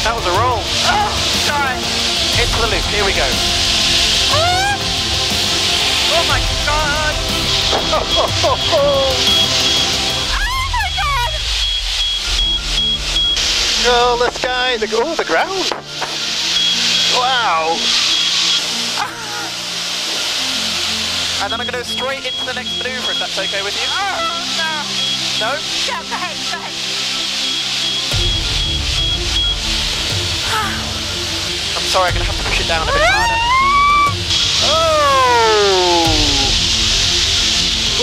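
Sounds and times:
piston engine drone: 0.0 - 15.0
background music: 0.0 - 38.0
rushing air hiss: 0.0 - 38.0
person exclaiming: 4.3 - 4.9, 8.0 - 9.4, 19.0 - 19.6, 30.4 - 30.9, 32.8 - 36.6
woman crying out sliding notes: 4.3 - 5.0, 10.3 - 11.4, 19.0 - 19.6, 30.4 - 30.9, 32.8 - 36.6.

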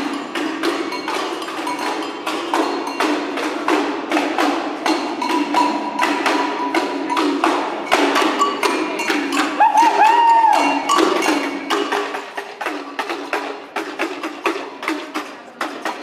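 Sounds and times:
wood-block-like knocks: 0.0 - 16.0.

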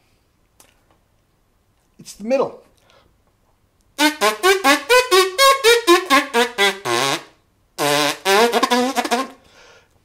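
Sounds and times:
brass instrument tongued notes: 4.0 - 9.4.

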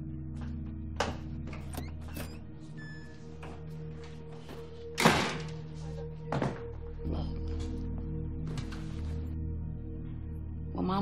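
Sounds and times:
quiet background music: 0.0 - 11.0
door thudding shut: 5.0 - 5.6.

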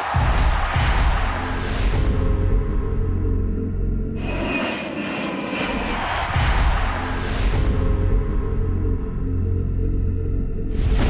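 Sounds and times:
dark background music: 0.0 - 11.0
jet aircraft engine: 4.2 - 5.8.

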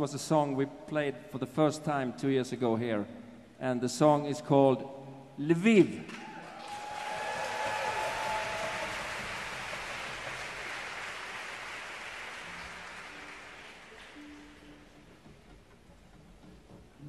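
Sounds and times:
audience cheering: 6.1 - 12.8
audience applauding: 6.2 - 14.7.

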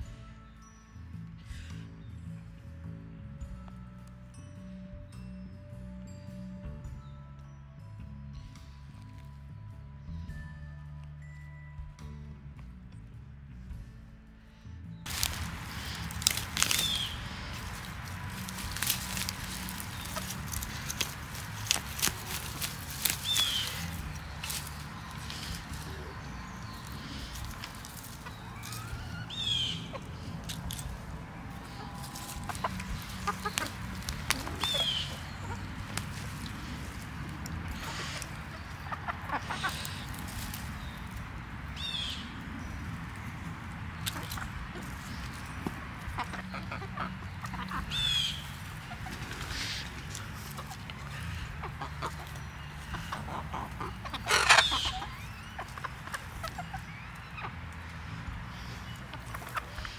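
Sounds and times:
chickens clucking: 15.1 - 59.9
hens calling: 15.1 - 59.9.

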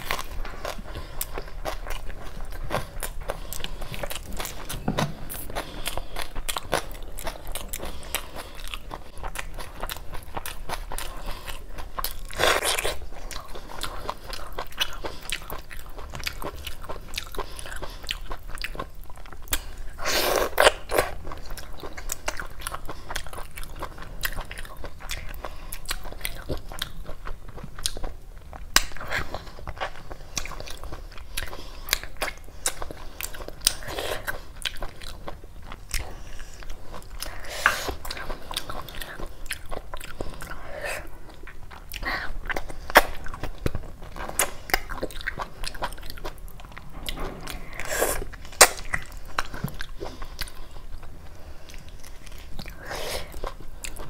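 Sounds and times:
wet chewing and mouth noises: 0.0 - 54.0.

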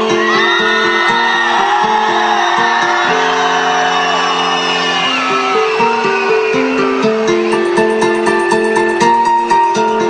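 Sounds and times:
loud amplified synthesizer music: 5.2 - 10.0.

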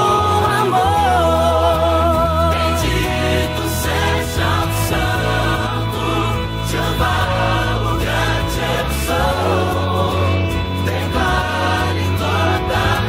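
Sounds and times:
choir-like backing voices: 0.0 - 13.0
held bass notes: 0.0 - 13.0
lead voice singing: 0.0 - 13.0.

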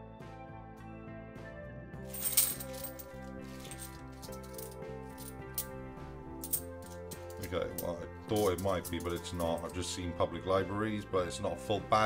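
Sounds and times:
instrumental background music: 0.0 - 12.0
coins clinking: 2.0 - 9.8.

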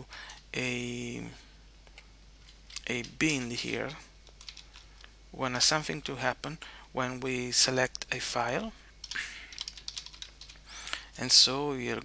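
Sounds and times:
keyboard typing: 2.4 - 4.9, 9.0 - 10.6.

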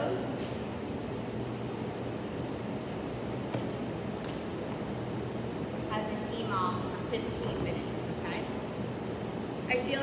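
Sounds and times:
room noise hum and hiss: 0.0 - 10.0.

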